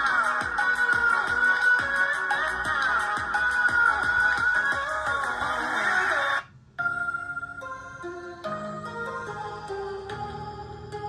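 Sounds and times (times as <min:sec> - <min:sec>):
music through a speaker: 0:00.0 - 0:11.0
calm music with held notes: 0:06.8 - 0:11.0.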